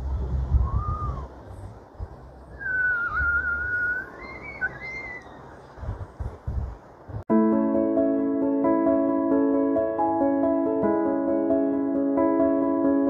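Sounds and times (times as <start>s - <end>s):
wind buffeting microphone: 0.0s - 7.3s
person whistling: 0.6s - 1.3s, 2.6s - 5.3s.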